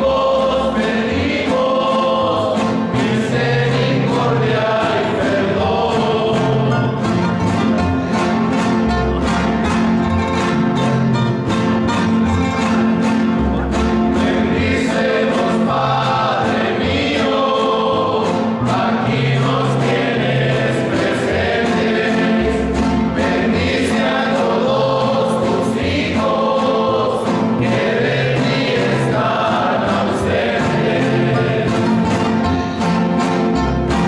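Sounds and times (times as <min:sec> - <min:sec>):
men singing a religious song: 0:00.0 - 0:06.9, 0:14.2 - 0:32.0
classical guitars playing chords: 0:00.0 - 0:34.0.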